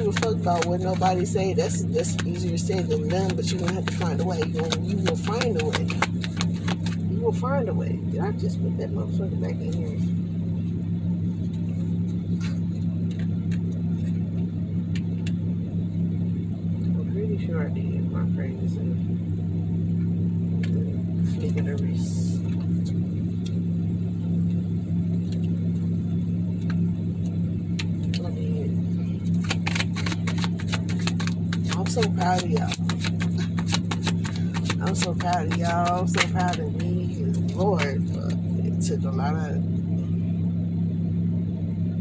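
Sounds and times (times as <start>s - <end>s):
car hum inside cabin: 0.0s - 42.0s.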